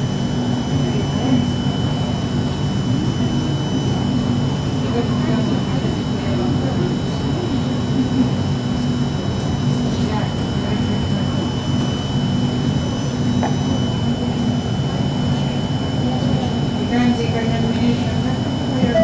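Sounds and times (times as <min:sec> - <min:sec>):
metro train humming: 0:00.0 - 0:19.0.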